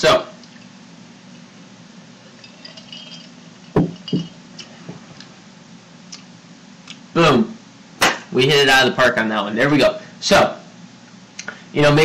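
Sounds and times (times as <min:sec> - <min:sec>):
ice clinking in glass: 0:02.2 - 0:04.4
mug knocking on wooden bar: 0:03.8 - 0:04.3.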